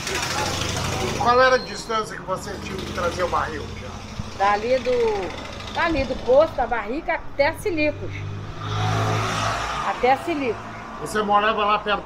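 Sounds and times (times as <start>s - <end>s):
car passing by: 7.7s - 12.0s.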